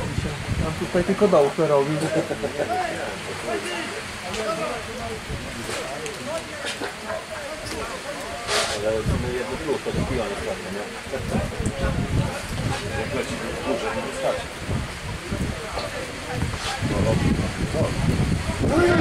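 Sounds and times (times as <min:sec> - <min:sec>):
wind buffeting microphone: 0:00.0 - 0:01.4, 0:08.8 - 0:19.0
people talking outdoors: 0:00.0 - 0:19.0
brief hiss: 0:08.4 - 0:08.9.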